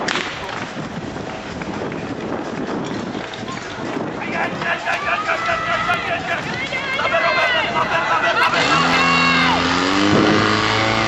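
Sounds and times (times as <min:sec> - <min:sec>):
running footsteps on grass: 0:00.3 - 0:08.4
voices shouting: 0:04.2 - 0:09.8.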